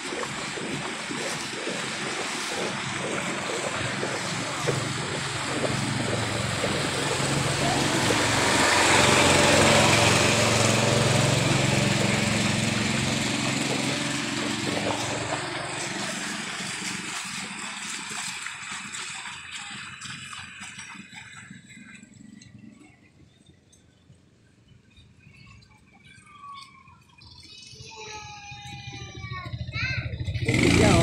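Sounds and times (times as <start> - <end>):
small motorcycle engine running: 0.0 - 22.3, 29.3 - 31.0
water splashing: 0.0 - 23.2, 30.1 - 31.0.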